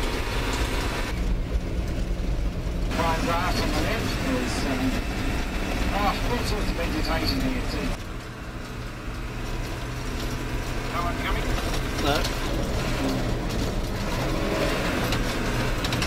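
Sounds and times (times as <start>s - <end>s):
coach engine running: 0.0s - 16.0s
tyres on gravel road: 0.0s - 16.0s.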